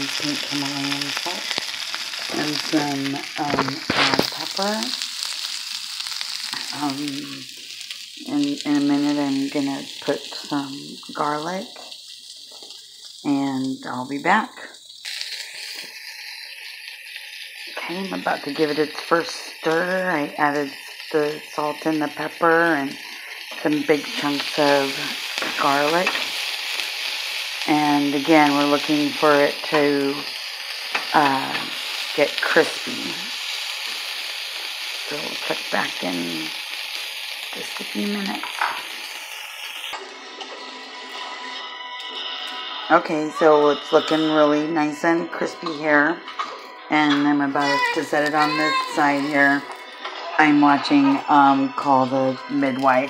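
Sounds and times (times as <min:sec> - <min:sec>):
cabbage sizzling in a pan: 0:00.0 - 0:53.0
television music with held tones: 0:00.0 - 0:53.0.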